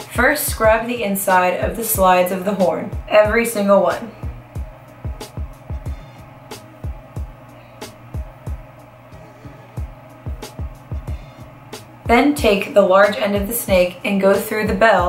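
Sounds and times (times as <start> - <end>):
kick drum thuds: 4.2 - 6.2, 6.8 - 7.4, 9.8 - 11.4.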